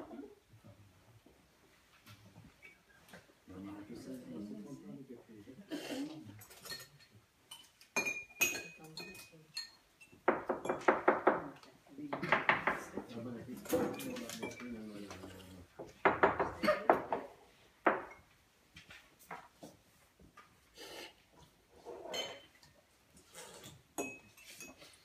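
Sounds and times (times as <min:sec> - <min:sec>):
spoons clinking on porcelain cups: 0:06.4 - 0:10.8, 0:24.0 - 0:25.0.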